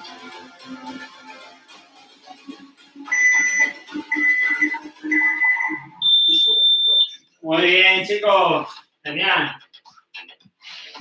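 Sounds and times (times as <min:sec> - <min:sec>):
faint background music: 0:00.0 - 0:11.0
long high-pitched timer beep: 0:03.1 - 0:07.1.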